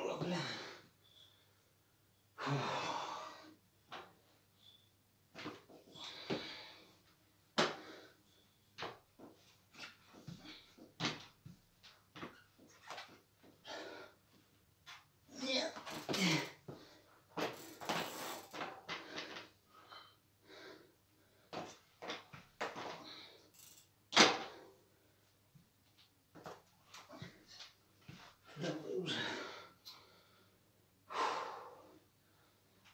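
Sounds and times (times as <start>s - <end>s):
person breathing: 29.1s - 32.7s.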